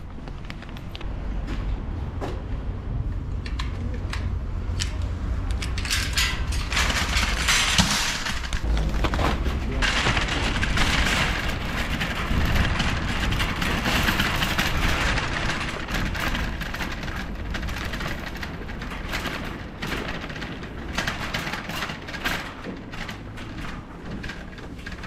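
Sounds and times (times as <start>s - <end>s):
shopping cart rattling and rolling: 3.8s - 25.0s.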